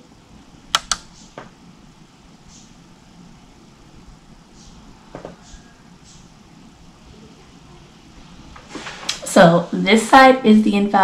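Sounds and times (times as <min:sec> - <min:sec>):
sharp clicks: 0:00.7 - 0:01.5.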